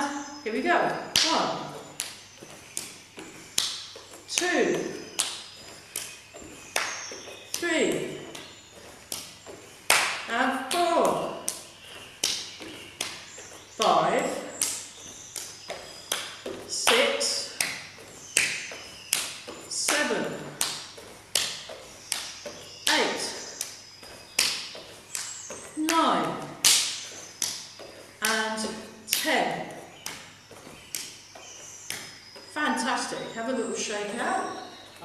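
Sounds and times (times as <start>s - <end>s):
woman counting: 0.0s - 2.0s, 4.3s - 5.2s, 7.5s - 8.4s, 10.2s - 11.7s, 13.8s - 14.9s, 16.6s - 17.8s, 19.7s - 20.9s, 22.8s - 23.6s, 25.8s - 26.6s, 28.2s - 30.0s, 32.5s - 34.8s
bare feet slapping wooden floor: 0.8s - 33.4s.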